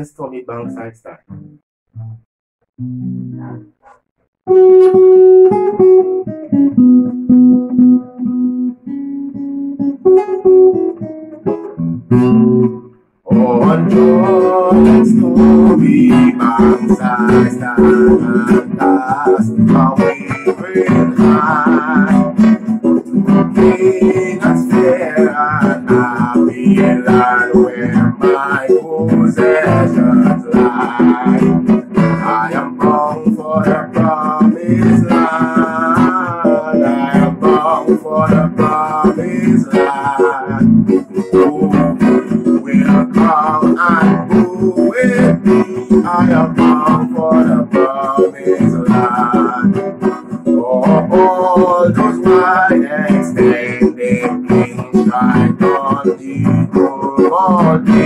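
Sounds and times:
acoustic guitar strumming: 0.0 - 58.0
man singing: 13.2 - 58.0.

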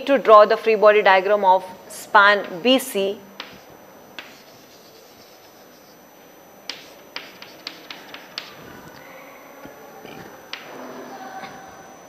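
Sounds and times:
chalk tapping on blackboard: 3.4 - 3.6, 4.2 - 6.0, 6.7 - 8.6.

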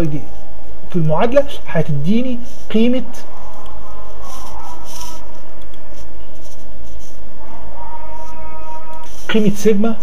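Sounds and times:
low hum: 0.0 - 10.0
scratchy rustles: 4.0 - 7.2.

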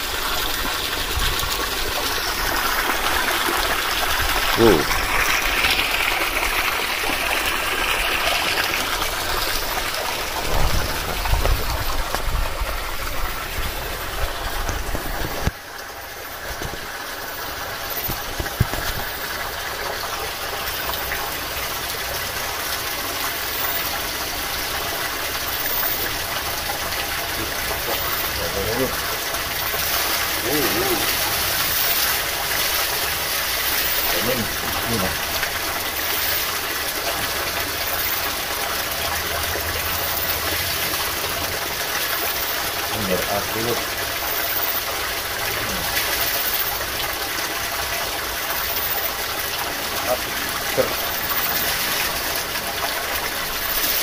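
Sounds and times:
water pouring from pipe: 0.0 - 54.0
water splashing into pool: 0.0 - 54.0.

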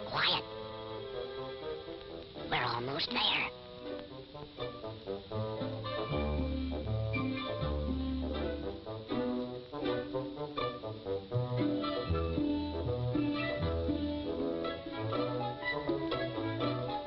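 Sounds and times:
orchestral music with brass: 0.4 - 2.6, 3.6 - 17.0.

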